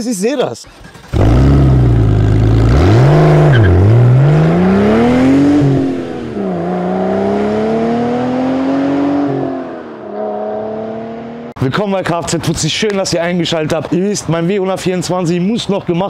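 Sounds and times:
car engine revving: 0.7s - 11.6s.

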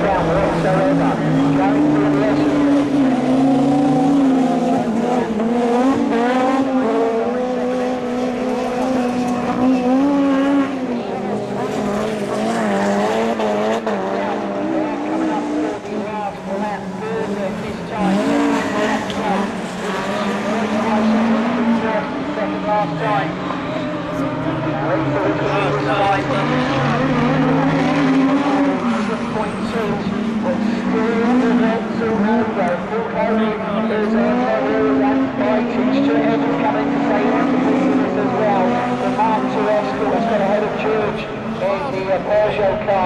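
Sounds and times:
racing car engines revving: 0.0s - 43.0s.

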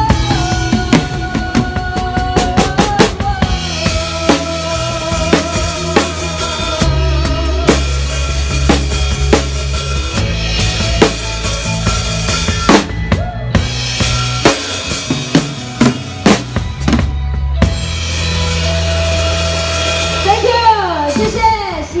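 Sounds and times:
drum and cymbal hits: 0.0s - 22.0s
live band playing: 0.0s - 22.0s.

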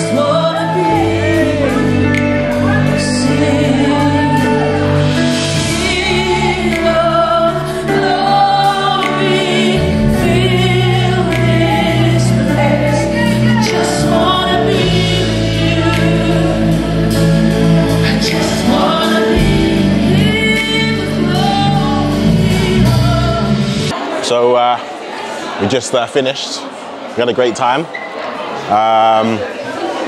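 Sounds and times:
bass guitar: 0.0s - 23.9s
band playing: 0.0s - 24.1s
woman singing lead: 0.0s - 24.1s
backing singers: 0.0s - 25.7s
drums playing: 13.6s - 23.9s.

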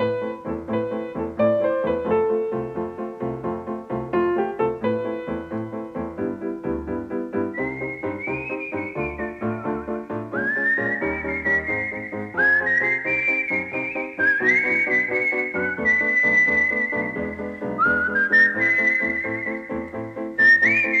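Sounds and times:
whistled melody: 6.6s - 21.0s.

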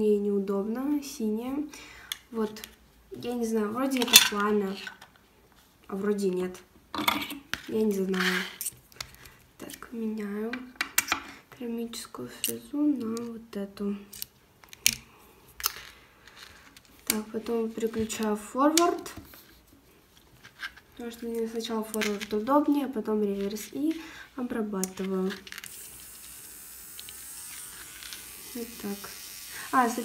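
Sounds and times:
electric nail drill whining: 25.6s - 30.0s.

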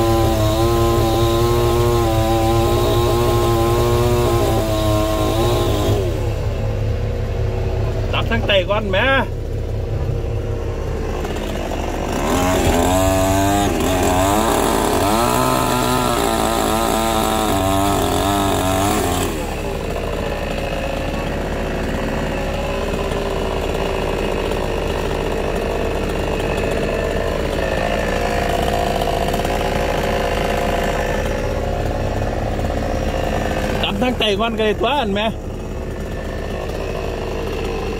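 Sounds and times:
chainsaw cutting wood: 0.0s - 37.9s
heavy engine idling: 0.0s - 37.9s.

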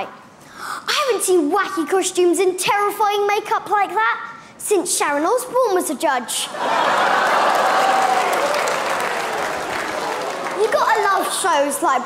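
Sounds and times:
audience laughing: 6.5s - 10.4s
audience applauding: 6.6s - 11.2s.

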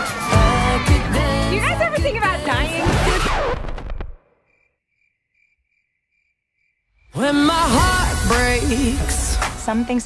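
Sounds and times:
party music: 0.0s - 3.2s
music with singing voice: 0.0s - 3.3s, 7.1s - 10.0s
crickets chirping: 4.4s - 7.2s.

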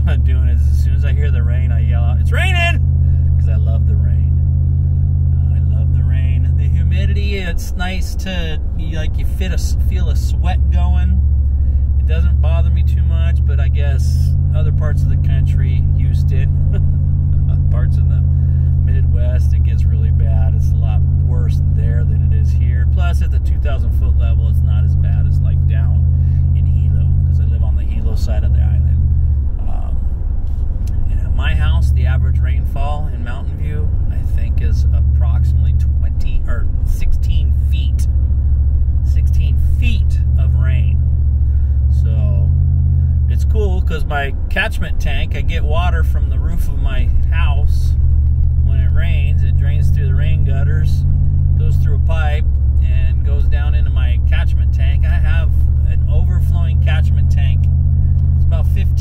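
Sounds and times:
man talking: 0.0s - 4.5s, 5.2s - 11.2s, 12.0s - 30.1s, 30.9s - 38.1s, 39.0s - 41.1s, 41.9s - 42.6s, 43.3s - 48.0s, 48.6s - 57.8s, 58.4s - 59.0s
car engine and tyre rumble: 0.0s - 59.0s.

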